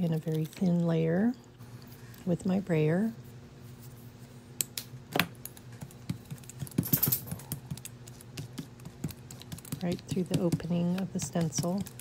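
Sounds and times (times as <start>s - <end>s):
brayer rolling through tacky paint: 7.4s - 12.0s.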